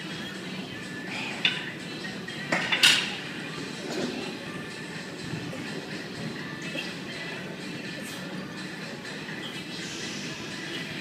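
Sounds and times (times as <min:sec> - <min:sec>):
gym background music: 0:00.0 - 0:11.0.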